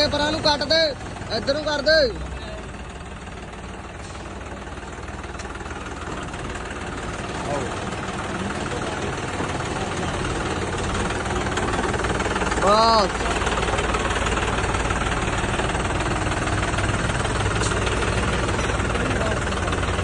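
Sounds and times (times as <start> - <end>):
tractor diesel engine running: 0.0 - 20.0.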